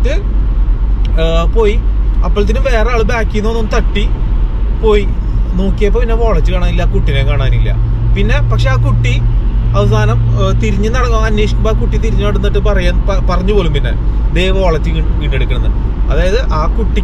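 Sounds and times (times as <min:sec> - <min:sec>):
man talking: 0:00.0 - 0:00.3, 0:01.1 - 0:04.1, 0:04.8 - 0:09.2, 0:09.8 - 0:17.0
road and engine rumble: 0:00.0 - 0:17.0
steady low hum: 0:00.0 - 0:17.0.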